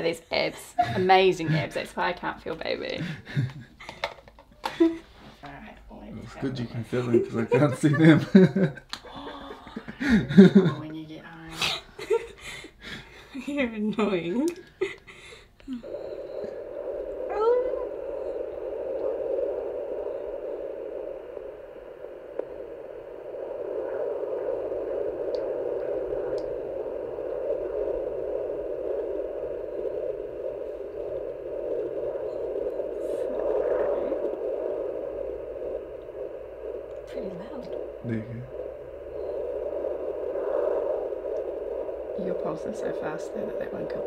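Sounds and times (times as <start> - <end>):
fast heartbeat pulse: 15.8 - 44.0.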